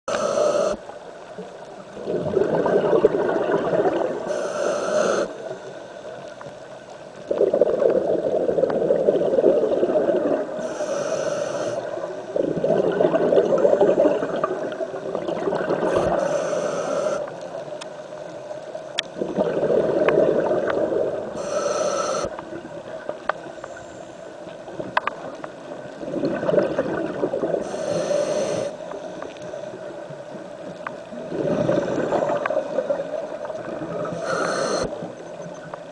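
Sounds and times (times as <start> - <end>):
regulator hissing inhalations: 0.1 - 0.8, 4.3 - 5.4, 10.6 - 12.0, 15.9 - 17.4, 21.4 - 22.3, 27.6 - 29.0, 34.1 - 35.0
bubbling exhalation: 2.1 - 4.2, 12.4 - 16.2, 31.3 - 33.0
faint sharp clicks: 17.1 - 19.2, 23.1 - 23.8, 24.9 - 25.6, 30.7 - 31.1, 32.4 - 32.6, 34.8 - 35.9.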